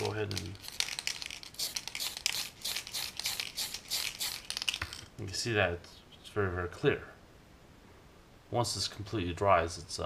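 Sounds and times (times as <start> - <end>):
aerosol can spraying bursts: 1.5 - 4.7.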